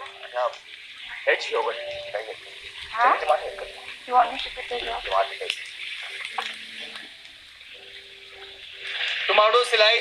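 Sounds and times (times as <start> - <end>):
food frying in a wok: 0.0 - 10.0.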